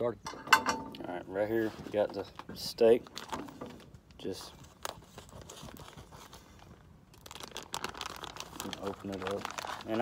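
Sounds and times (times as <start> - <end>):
plastic package being handled: 2.9 - 10.0.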